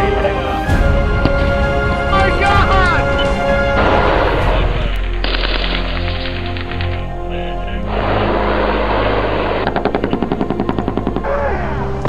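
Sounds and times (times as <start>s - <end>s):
low steady drone: 0.0s - 12.0s
automatic gunfire: 8.0s - 11.5s.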